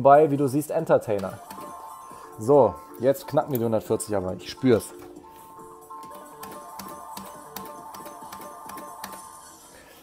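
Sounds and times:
gaming machine electronic melody: 0:00.0 - 0:09.9.

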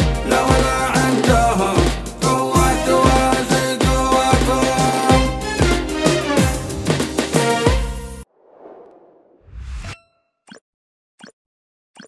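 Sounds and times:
whoosh: 0:08.2 - 0:10.1.

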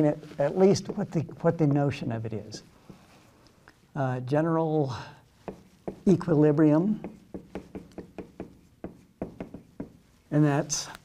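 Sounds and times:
marker tapping on whiteboard: 0:05.4 - 0:06.2, 0:06.9 - 0:10.0.

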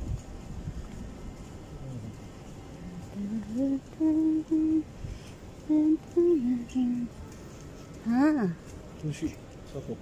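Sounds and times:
person humming a tune: 0:02.9 - 0:04.9.

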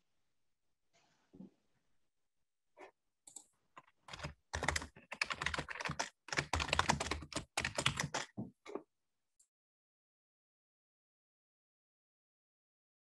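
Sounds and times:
typing on computer keyboard: 0:03.3 - 0:08.4.

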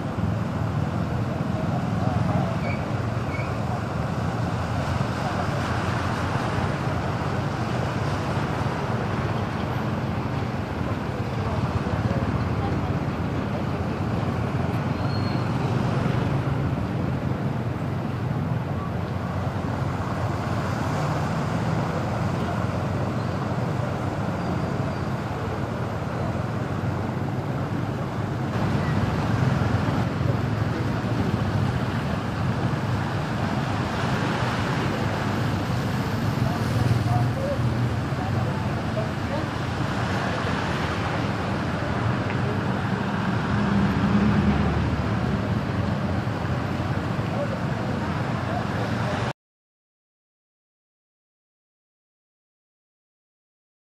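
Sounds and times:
tyres through shallow water: 0:00.0 - 0:49.3
vehicle engines running: 0:00.0 - 0:49.3.

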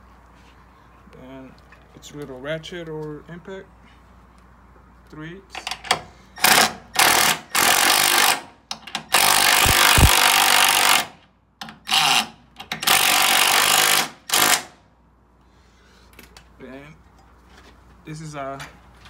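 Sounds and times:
impact driver hammering a bolt: 0:05.6 - 0:14.8.

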